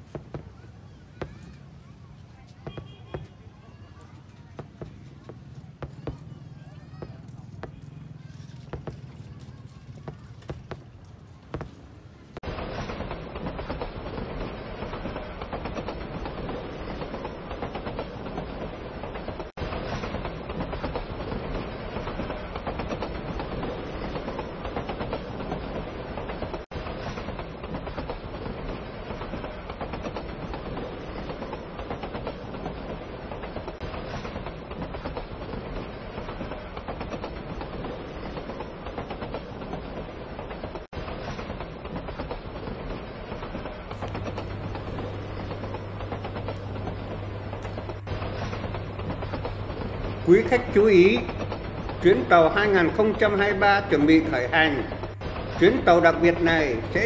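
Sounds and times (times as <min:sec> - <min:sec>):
train wheels on rails: 0:00.0 - 0:57.0.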